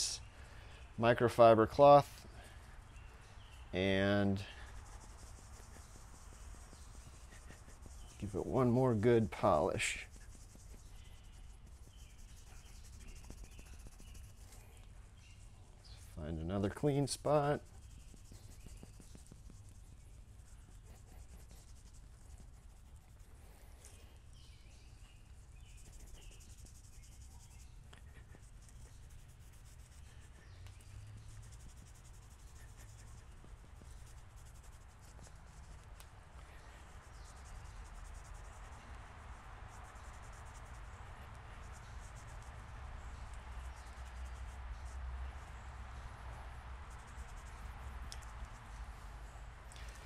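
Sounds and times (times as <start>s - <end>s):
cloth rubbing on metal: 0.0s - 0.2s, 3.7s - 24.3s, 25.0s - 50.0s.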